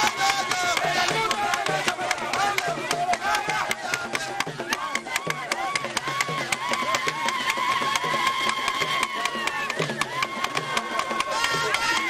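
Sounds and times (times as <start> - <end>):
crowd singing and shouting: 0.0 - 12.0
hand drum beating: 0.0 - 12.0
sharp percussive strokes: 0.0 - 12.0.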